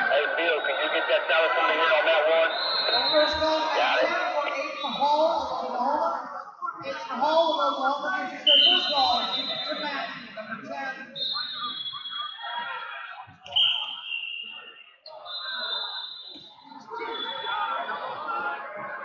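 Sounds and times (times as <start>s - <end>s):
crowd chatter in echoing hall: 0.0s - 19.0s
referee whistle blasts: 2.4s - 3.6s, 8.5s - 10.0s, 13.5s - 17.6s.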